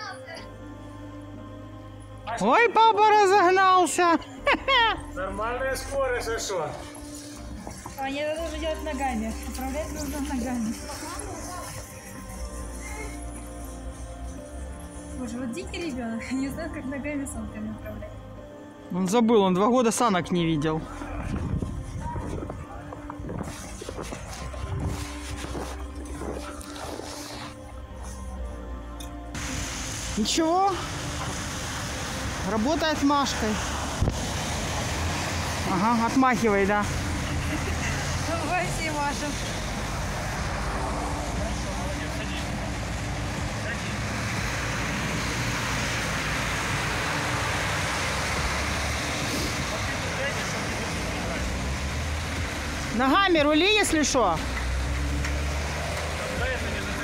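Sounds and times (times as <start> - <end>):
road traffic noise: 0.0 - 57.0
footsteps crunching in snow: 6.6 - 14.4, 21.2 - 28.4
wind rumble on microphone: 21.1 - 27.1, 33.8 - 35.7.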